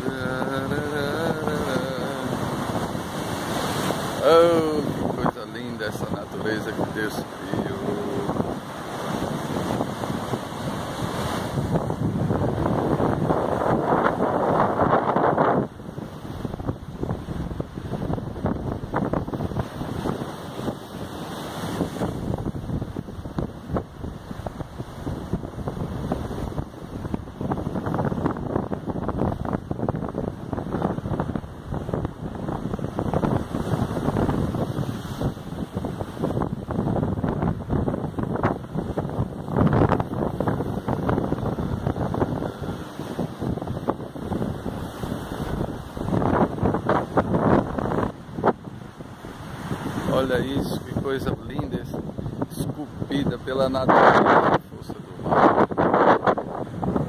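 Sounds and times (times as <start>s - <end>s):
waves breaking on rocky shore: 0.0s - 57.0s
wind buffeting microphone: 0.0s - 57.0s.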